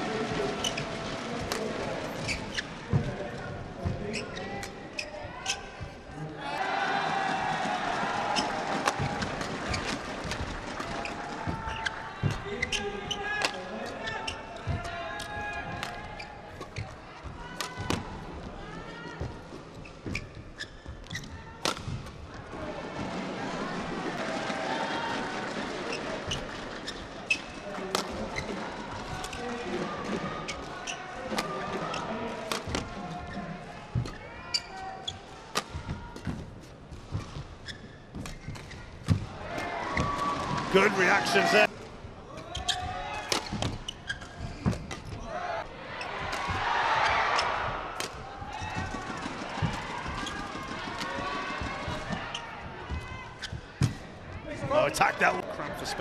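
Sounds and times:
footsteps on court: 0.0s - 22.2s, 23.9s - 41.8s, 46.0s - 56.0s
indistinct echoing voices: 39.3s - 43.3s.

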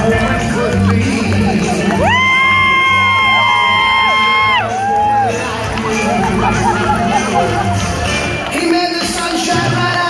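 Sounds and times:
backing track music: 0.0s - 10.0s
crowd cheering: 0.2s - 10.0s.

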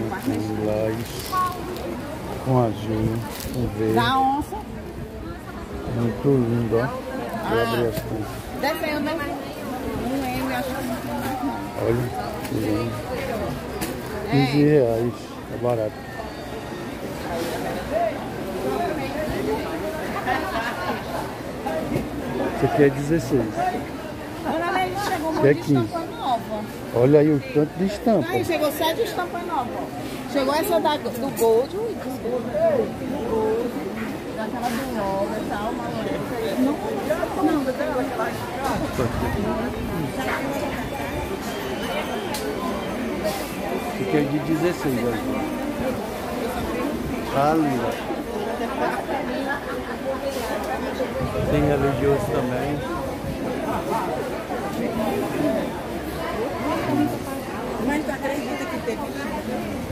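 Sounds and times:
indistinct chatter: 0.0s - 59.9s.

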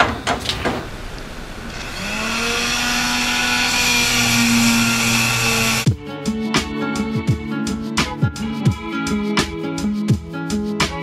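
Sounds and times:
electric sander running: 1.6s - 5.9s.

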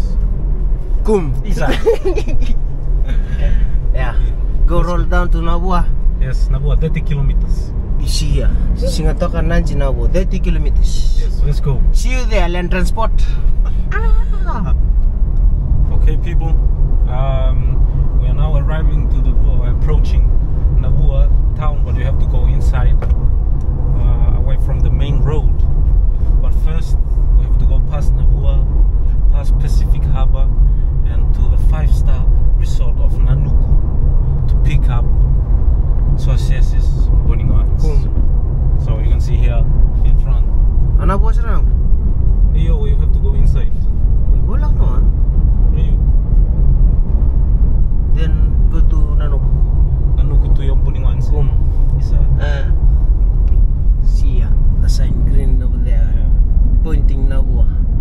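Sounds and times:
car engine and tyres rumble: 0.0s - 58.0s
people talking: 1.0s - 14.8s, 15.9s - 23.1s, 23.9s - 25.6s, 26.4s - 28.7s, 29.3s - 33.7s, 34.5s - 35.1s, 36.2s - 38.2s, 38.8s - 41.7s, 42.6s - 45.1s, 45.8s - 46.0s, 48.2s - 49.5s, 50.2s - 52.8s, 54.0s - 57.8s.

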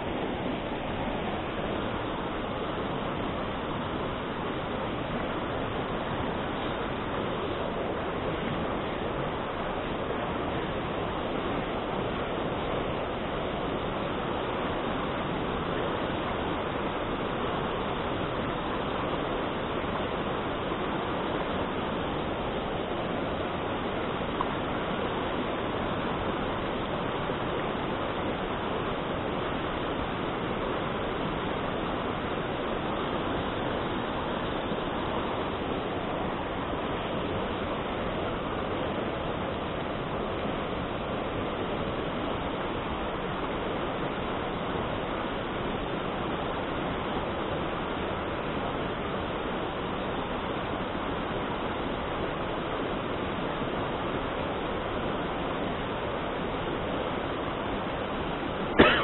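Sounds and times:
stream rushing over boulders: 0.0s - 59.0s.

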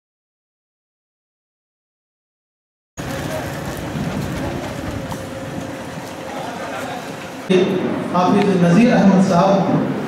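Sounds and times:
noisy background ambience: 3.0s - 10.0s.

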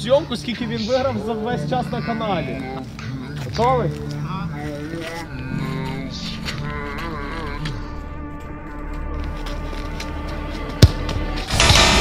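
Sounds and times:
background music: 0.0s - 12.0s
football being kicked thud: 10.8s - 11.2s.

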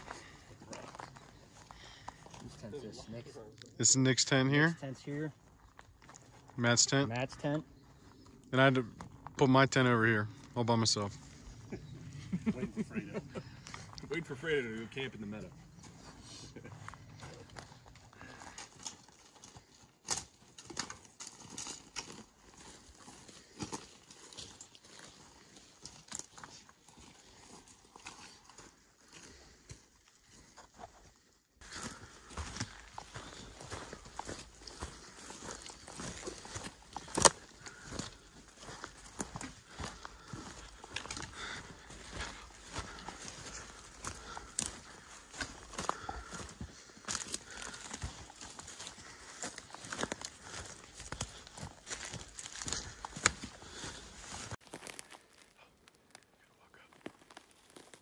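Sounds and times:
footsteps crunching on dry twigs: 0.0s - 2.7s, 5.1s - 9.4s, 15.5s - 58.0s.

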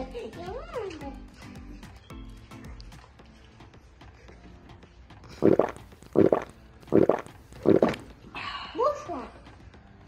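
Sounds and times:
person making gulping noises: 5.4s - 8.1s.

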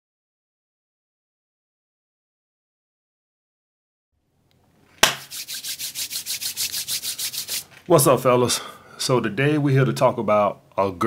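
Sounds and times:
sharp knock: 5.0s - 5.3s
rapid rubbing or scraping strokes: 5.0s - 7.9s
person speaking: 5.2s - 9.7s.

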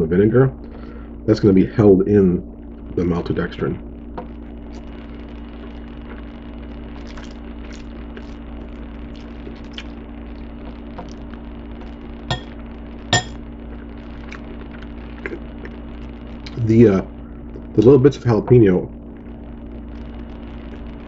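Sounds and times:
low hum: 0.0s - 21.0s
fork clinking on ceramic bowl: 13.2s - 13.4s.

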